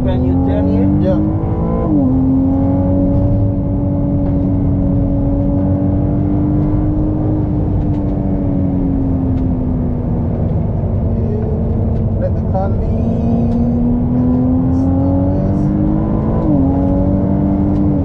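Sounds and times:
car engine running hard: 0:00.0 - 0:18.0
road and wind noise: 0:00.0 - 0:18.0.

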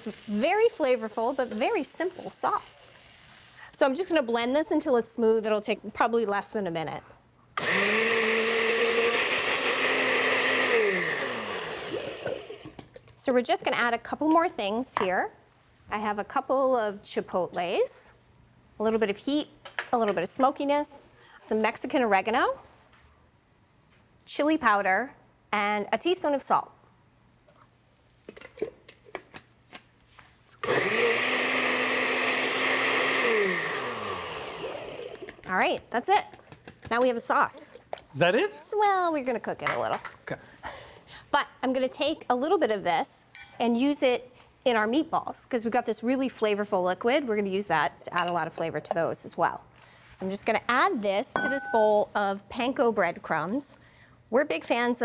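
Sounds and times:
blender motor whining: 0:07.6 - 0:12.7, 0:30.6 - 0:35.4.

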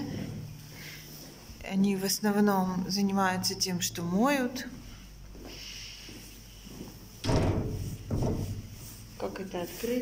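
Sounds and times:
door thudding and rattling: 0:07.2 - 0:08.8.

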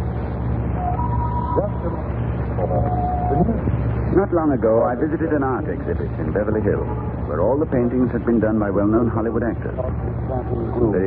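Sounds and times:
low radio hum: 0:00.0 - 0:11.0.

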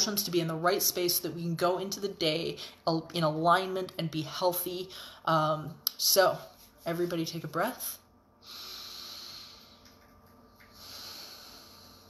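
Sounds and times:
woman breathing deeply: 0:08.4 - 0:09.8, 0:10.7 - 0:12.0.

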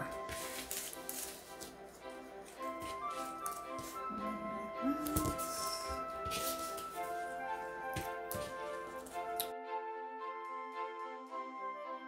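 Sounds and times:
paper sheets rustling: 0:00.0 - 0:01.9, 0:05.0 - 0:09.3
soft background music: 0:00.0 - 0:12.0.

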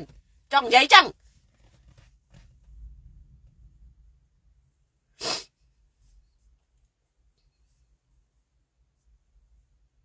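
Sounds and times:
low background rumble: 0:00.0 - 0:10.0
person sharp breath: 0:05.2 - 0:05.6.

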